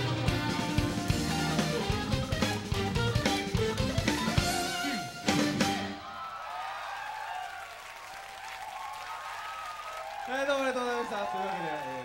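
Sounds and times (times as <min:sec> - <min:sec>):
audience applauding: 0:05.9 - 0:12.0.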